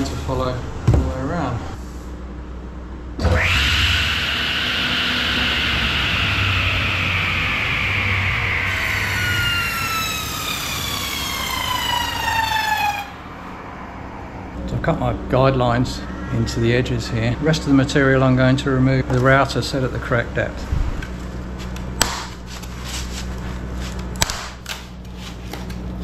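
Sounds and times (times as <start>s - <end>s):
table saw whining: 3.2s - 13.4s.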